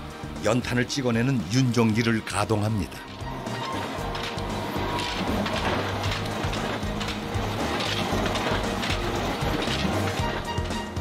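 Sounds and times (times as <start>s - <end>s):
background music: 0.0s - 11.0s
briquette press running: 0.8s - 11.0s.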